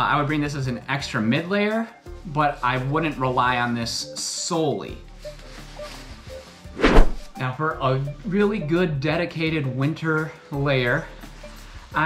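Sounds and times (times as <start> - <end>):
faint background music: 0.0 - 12.0
jacket rustling thump: 6.7 - 7.4.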